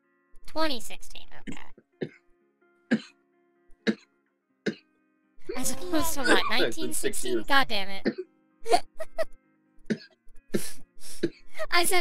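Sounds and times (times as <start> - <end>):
quiet background music: 0.0 - 12.0
person coughing: 2.9 - 3.1, 6.2 - 6.7, 9.9 - 11.4.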